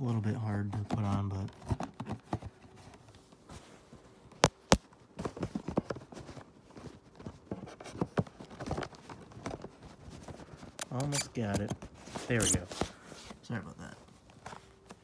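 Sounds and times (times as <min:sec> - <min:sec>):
cardboard scraping on a case: 0:05.3 - 0:15.0.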